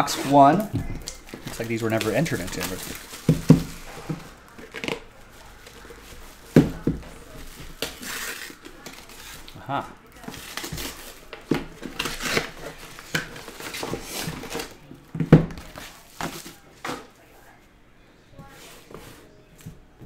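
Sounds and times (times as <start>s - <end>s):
cardboard boxes handled: 0.0s - 9.5s
paper wrapping tearing: 0.0s - 9.6s, 10.2s - 14.8s.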